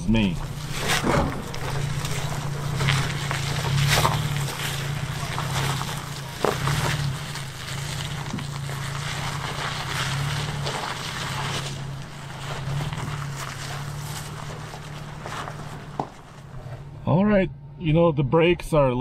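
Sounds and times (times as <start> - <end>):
tyre and trail noise: 0.0 - 17.6
truck engine running low: 0.0 - 18.6
rock clicking under tyres: 0.4 - 16.9.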